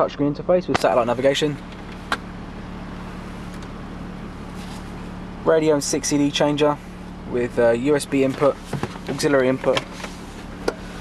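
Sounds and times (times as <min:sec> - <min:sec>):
car cabin low hum: 0:00.0 - 0:11.0.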